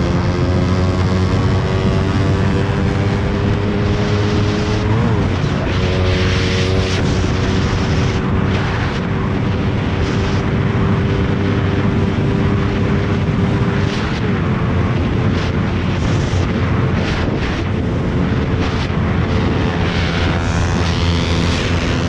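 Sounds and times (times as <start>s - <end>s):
motorcycle engine at high revs: 0.0s - 22.0s
wind rush over microphone: 0.0s - 22.0s.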